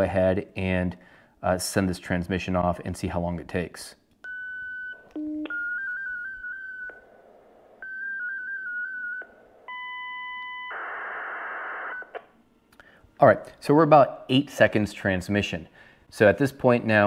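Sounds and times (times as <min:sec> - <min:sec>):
electronic data tones: 0:04.3 - 0:12.1.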